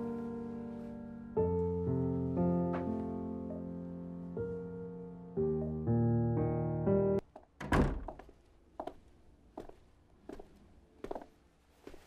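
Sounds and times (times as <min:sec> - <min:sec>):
piano background music: 0:00.0 - 0:07.2
door thudding: 0:07.6 - 0:08.2
light footsteps: 0:08.1 - 0:12.0.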